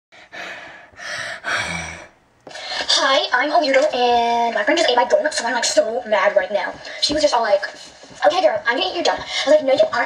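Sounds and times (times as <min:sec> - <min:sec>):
person gasping: 0:00.2 - 0:02.9.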